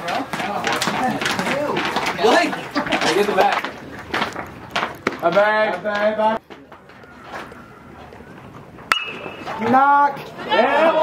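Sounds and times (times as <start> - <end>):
metal bat hitting ball: 8.9 - 9.6
spectators shouting: 9.1 - 11.0.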